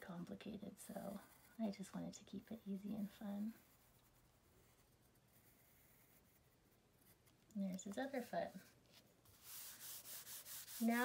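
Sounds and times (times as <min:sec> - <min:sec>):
pencil rubbing on paper: 0:00.9 - 0:07.2, 0:07.8 - 0:08.7, 0:09.3 - 0:11.0.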